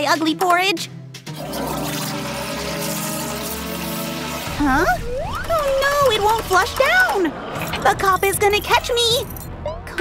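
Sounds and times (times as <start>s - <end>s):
toilet flushing: 1.4s - 4.6s.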